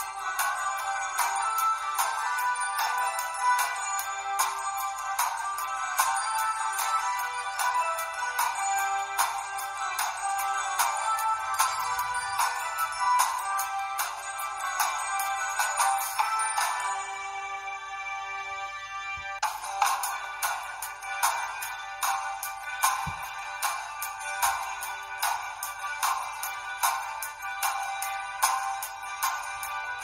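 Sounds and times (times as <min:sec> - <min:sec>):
light high melody over beat: 0:00.0 - 0:30.0.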